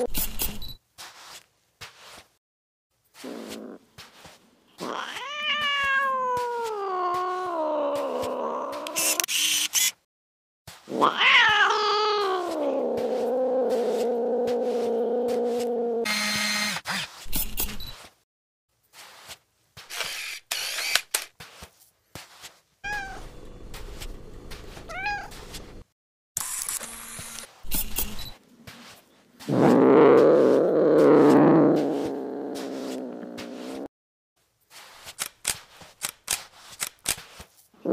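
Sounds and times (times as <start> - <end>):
cat yowling: 4.8 - 9.2, 11.0 - 14.8, 22.8 - 23.2, 24.9 - 25.4.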